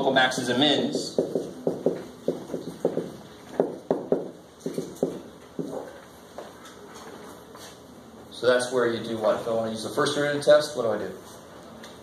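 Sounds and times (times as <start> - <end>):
marker tapping on whiteboard: 0.8 - 5.9.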